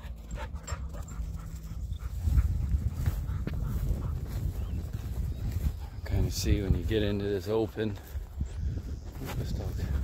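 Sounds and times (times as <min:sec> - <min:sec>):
dog panting: 0:00.0 - 0:05.0
wind rumble on microphone: 0:00.3 - 0:10.0.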